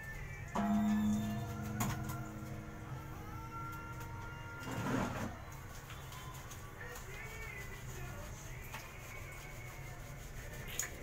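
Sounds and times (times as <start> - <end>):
steady background hum: 0.5 - 11.0.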